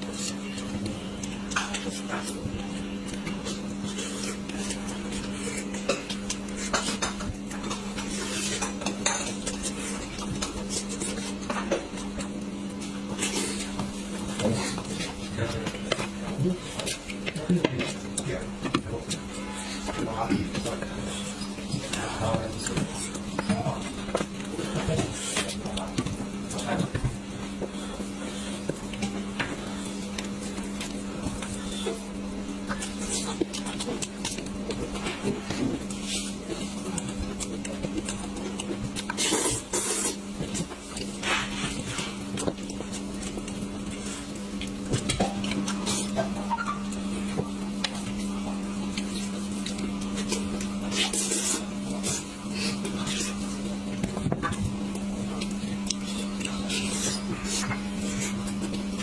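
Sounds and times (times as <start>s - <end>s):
eating sounds: 0.0s - 59.0s
steady low hum: 0.0s - 59.0s.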